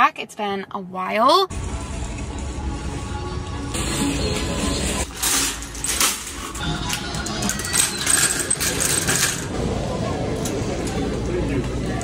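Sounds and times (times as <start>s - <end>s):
shopping cart rattling: 4.5s - 9.7s.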